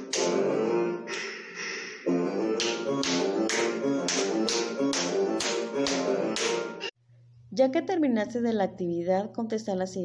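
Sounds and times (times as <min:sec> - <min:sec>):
body percussion claps and pats: 0:00.0 - 0:00.4, 0:02.6 - 0:06.7
instrumental music: 0:00.0 - 0:06.9.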